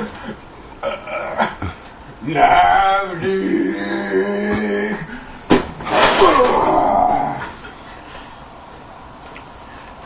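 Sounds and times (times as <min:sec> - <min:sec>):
low room noise: 0:00.0 - 0:10.0
person whimpering cry: 0:00.8 - 0:05.2.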